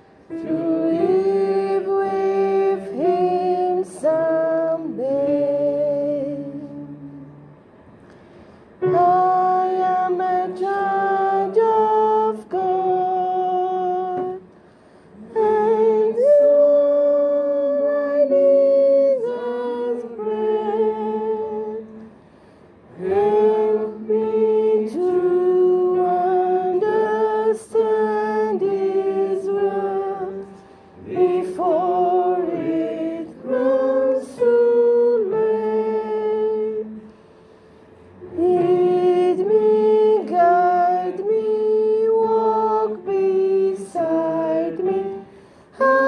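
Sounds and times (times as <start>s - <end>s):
voices singing together: 0.0s - 7.6s, 8.8s - 22.2s, 22.8s - 37.4s, 38.1s - 46.0s.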